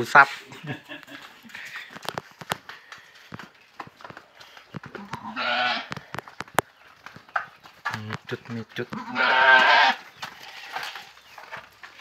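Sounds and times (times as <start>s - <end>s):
goat bleating: 5.0s - 6.0s, 8.9s - 11.1s
sharp clicks and taps: 5.9s - 9.0s.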